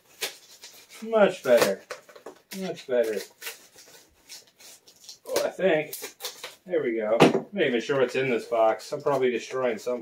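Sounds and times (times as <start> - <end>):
knife cutting tape and cardboard: 0.0 - 6.6.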